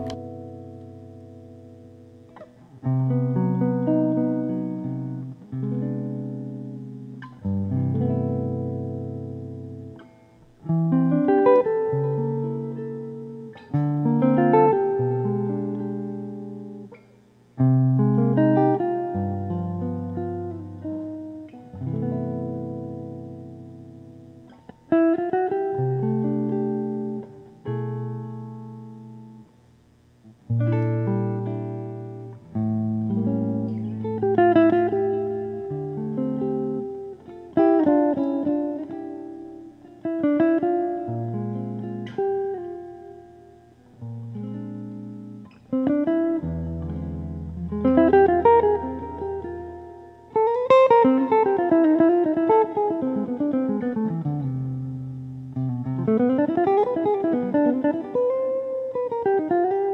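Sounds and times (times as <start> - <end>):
jazz guitar playing chords: 0.0 - 59.9.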